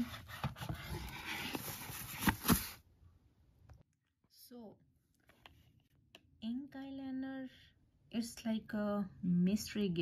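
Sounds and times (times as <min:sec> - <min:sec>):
cardboard and paper rustling: 0:00.0 - 0:02.8.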